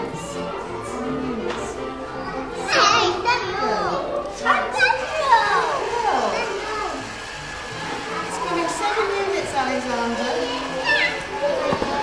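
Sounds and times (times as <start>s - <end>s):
music: 0.0s - 12.0s
young children chattering: 0.0s - 12.0s.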